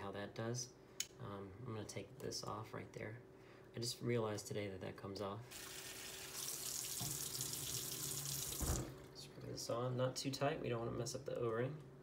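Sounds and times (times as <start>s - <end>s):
faucet running into plastic bottle: 5.5s - 8.9s.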